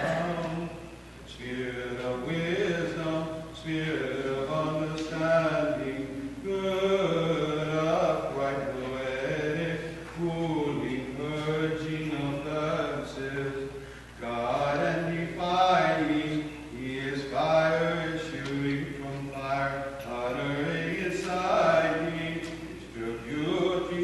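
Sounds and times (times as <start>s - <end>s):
man chanting: 0.0s - 24.0s.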